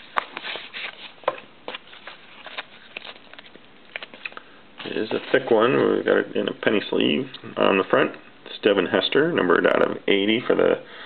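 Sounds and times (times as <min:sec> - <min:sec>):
wrapper rustling: 0:00.0 - 0:05.7.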